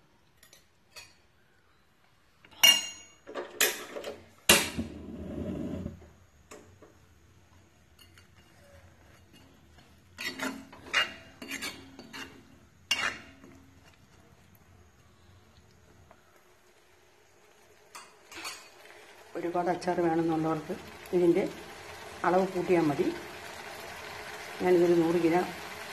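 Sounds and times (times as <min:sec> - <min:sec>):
spoon clinking on iron pan: 0:02.6 - 0:04.0, 0:07.9 - 0:09.6, 0:10.2 - 0:13.6.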